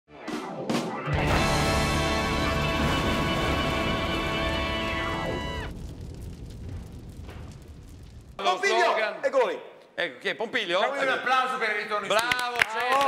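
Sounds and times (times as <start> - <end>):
tv theme music chord: 0.3 - 5.2
deep low rumble: 2.8 - 8.4.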